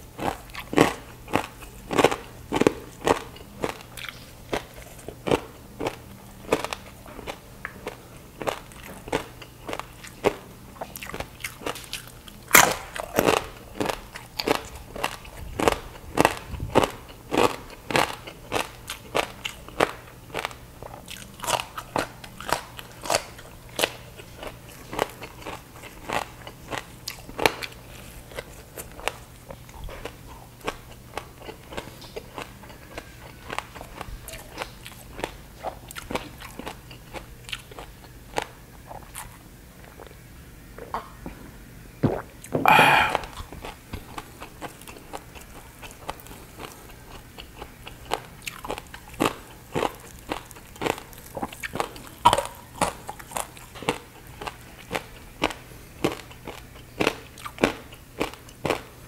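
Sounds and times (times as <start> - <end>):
crunchy chewing: 0.0 - 41.4, 42.1 - 59.0.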